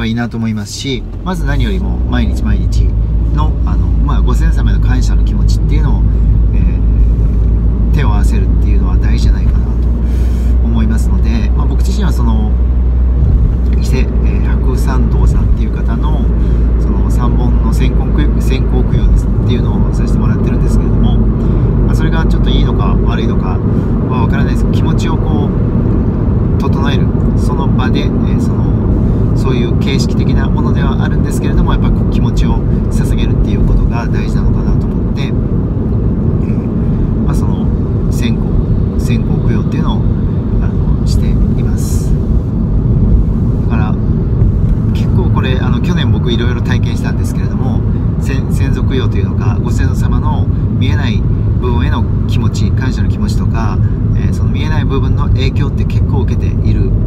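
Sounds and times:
man talking: 0.0 - 7.2, 7.8 - 12.6, 13.2 - 25.6, 26.5 - 35.4, 36.4 - 42.3, 43.6 - 44.1, 44.7 - 57.0
car road and engine rumble: 0.0 - 57.0.

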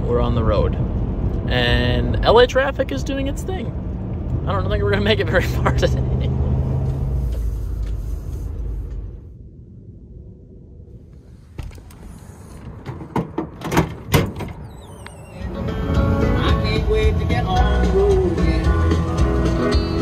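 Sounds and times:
road and engine noise in a cab: 0.0 - 20.0
wind gusts through open window: 6.6 - 15.4
music: 15.4 - 20.0.

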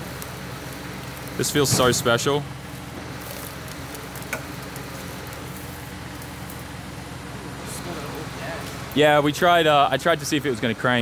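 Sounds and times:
truck engine running: 0.0 - 11.0.

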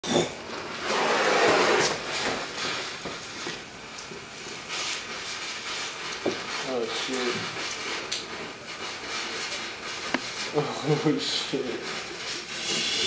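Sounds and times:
flame flaring with rushing noise: 0.4 - 6.6
fire hissing and crackling: 0.4 - 13.0.

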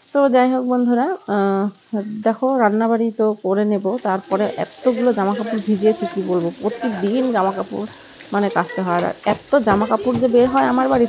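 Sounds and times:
fish sizzling in oil: 0.0 - 11.0
woman talking: 0.2 - 11.0.

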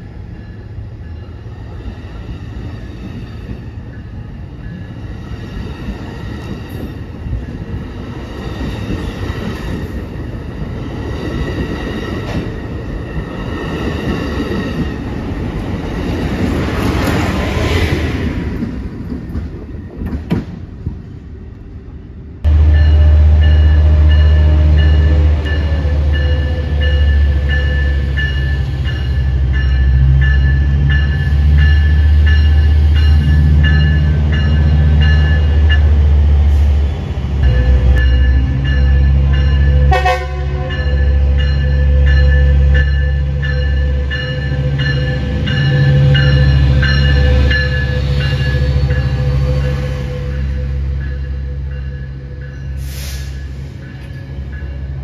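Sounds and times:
diesel locomotive engine rumble: 0.0 - 55.0
train horn blasts: 22.5 - 26.8, 39.7 - 41.2.

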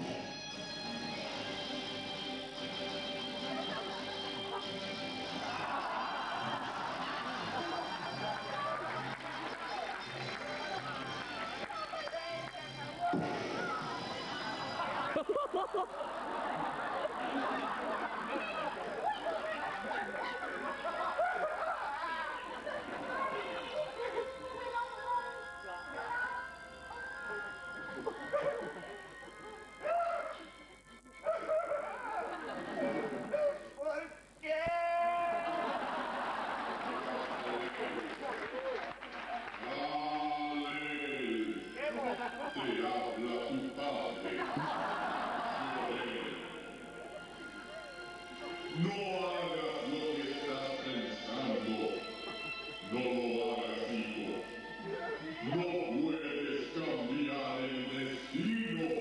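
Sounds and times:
live stage music: 0.0 - 21.6, 39.2 - 59.0
person's voice: 52.9 - 59.0.

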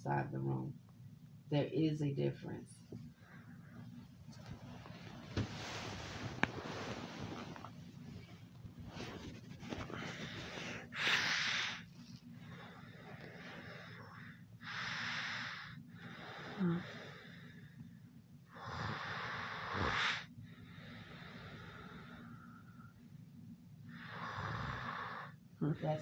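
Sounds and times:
faint steady hum: 0.0 - 26.0
heavy airy breathing: 3.1 - 17.8, 18.5 - 23.0.

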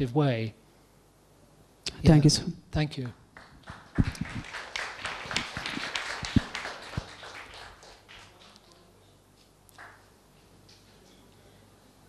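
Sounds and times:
audience clapping: 3.3 - 8.9, 9.7 - 10.1.

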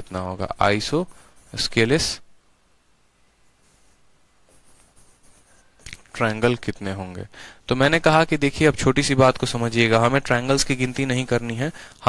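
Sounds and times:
writing on a board: 3.7 - 7.2.

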